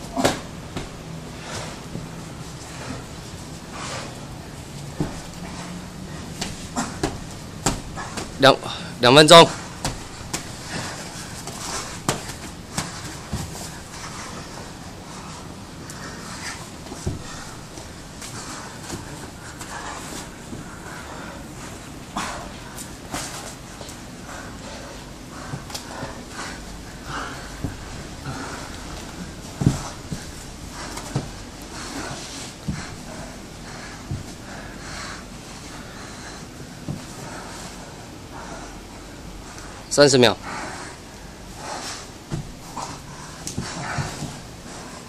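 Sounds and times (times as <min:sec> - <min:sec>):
men breathing hard: 0:00.1 - 0:45.0
bodies scuffing on mat: 0:00.2 - 0:08.4, 0:09.4 - 0:15.5, 0:25.4 - 0:38.0, 0:41.6 - 0:45.0.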